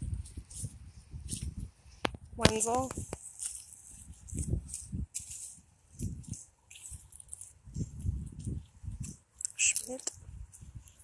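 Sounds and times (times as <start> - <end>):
footsteps on dry leaves: 0.0 - 11.0
dull low thumps: 7.6 - 9.2.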